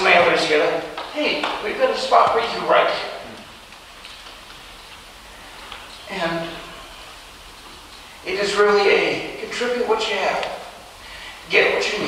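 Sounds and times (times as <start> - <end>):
faint room tone hiss: 0.0 - 12.0.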